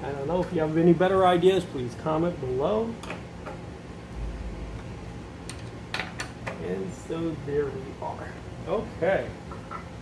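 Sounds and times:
short low rumble: 4.1s - 5.5s.

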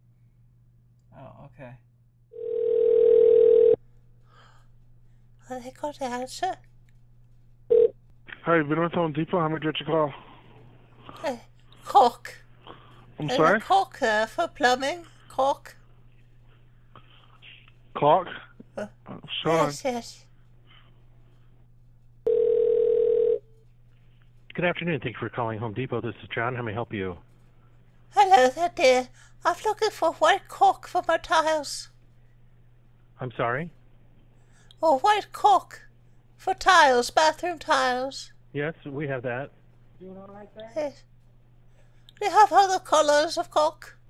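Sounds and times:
telephone line tone: 2.4s - 3.8s, 7.7s - 7.9s, 22.3s - 23.5s.

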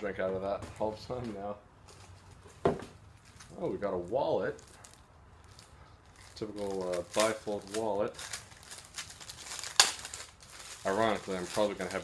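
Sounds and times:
plastic packaging crinkling: 3.1s - 12.0s.

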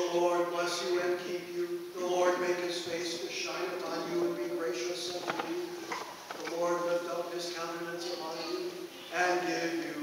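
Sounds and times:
man reciting on one pitch: 6.4s - 10.0s.

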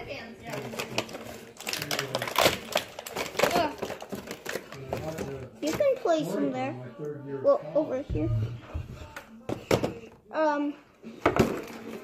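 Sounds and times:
clicks and rattles of small objects: 0.4s - 5.5s.

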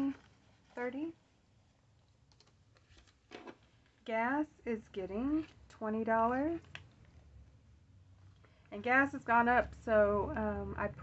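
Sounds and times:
banknotes rustling: 0.0s - 4.0s.

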